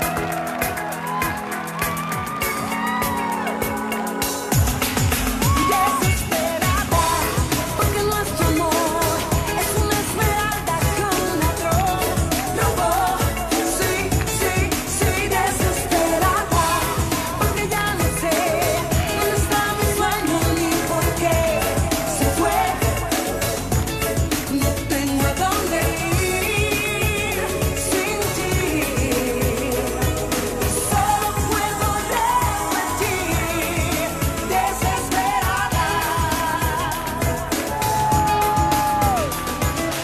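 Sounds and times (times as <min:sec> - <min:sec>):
woman singing into microphone: 0:02.5 - 0:40.0
backing track with kick drum: 0:04.4 - 0:40.0.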